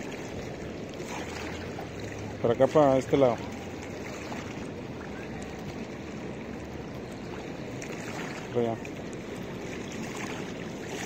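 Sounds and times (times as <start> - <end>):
small waves lapping on concrete: 0.0 - 11.0.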